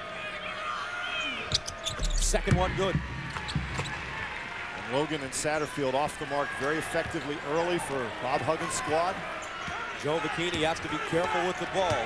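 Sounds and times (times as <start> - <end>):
arena crowd noise: 0.0 - 12.0
basketball bouncing on hardwood: 2.0 - 3.9.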